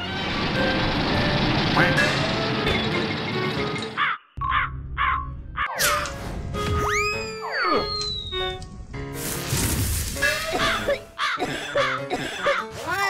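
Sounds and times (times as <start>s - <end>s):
cartoon crow cawing: 4.0s - 5.8s, 11.2s - 12.0s.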